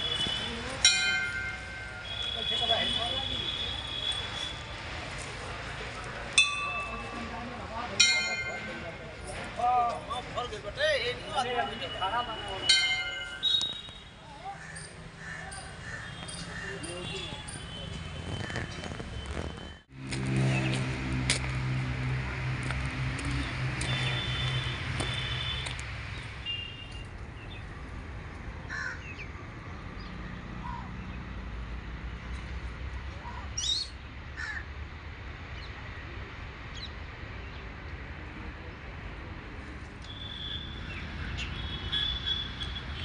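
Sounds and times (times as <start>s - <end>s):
bird calls: 13.4s - 17.7s.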